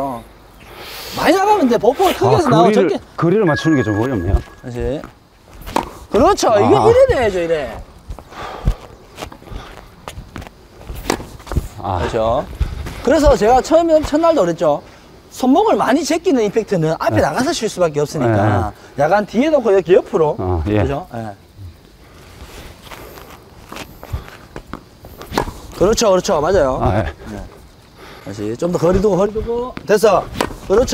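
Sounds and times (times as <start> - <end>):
tennis ball strikes and bounces: 30.4 - 30.6.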